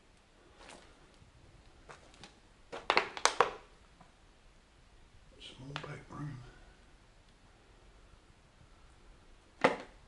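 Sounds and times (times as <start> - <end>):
footsteps crunching on rubble: 1.8 - 3.6.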